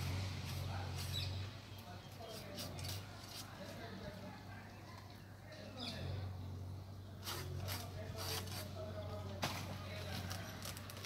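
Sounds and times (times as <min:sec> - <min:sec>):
blade scraping palm wood: 0:00.0 - 0:04.0, 0:07.2 - 0:11.0.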